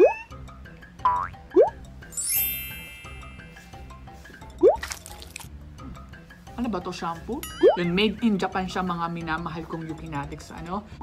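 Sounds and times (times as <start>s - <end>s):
light background music: 0.0s - 11.0s
rising boing effect: 1.0s - 1.7s
sparkling chime: 2.1s - 4.1s.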